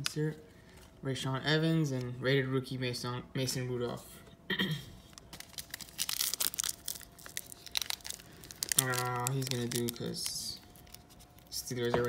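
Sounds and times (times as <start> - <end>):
foil wrapper crinkling and tearing: 5.0 - 12.0.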